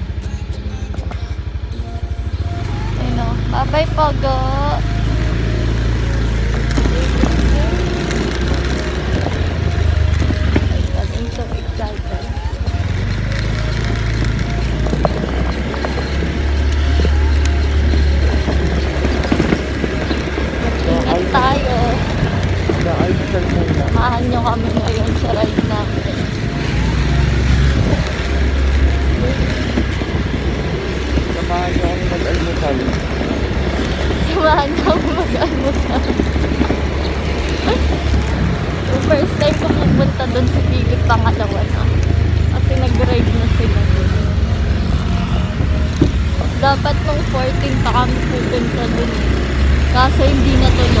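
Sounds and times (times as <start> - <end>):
motorcycle engine rumble: 0.0 - 51.0
faint voices: 2.9 - 51.0.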